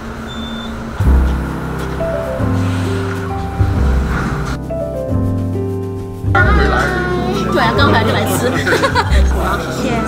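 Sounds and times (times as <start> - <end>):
elevator hum: 0.0 - 4.6
background music: 1.0 - 10.0.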